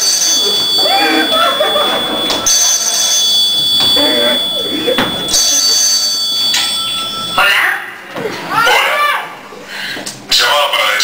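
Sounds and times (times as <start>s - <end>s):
telephone ringing: 0.0s - 7.5s.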